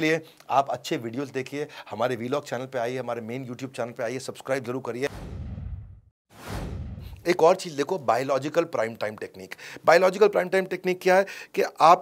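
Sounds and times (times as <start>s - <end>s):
falling whoosh: 5.1s - 7.3s
rising reverse whoosh: 5.1s - 7.3s.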